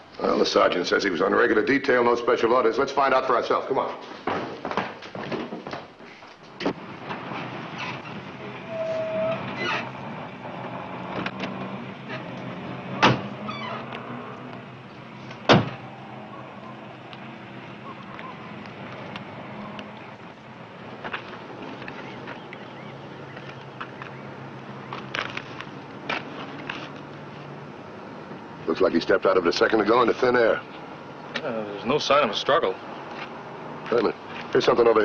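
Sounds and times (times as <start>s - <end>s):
car engine running: 6.6s - 29.6s
car door slams: 12.9s - 13.5s, 15.3s - 16.0s.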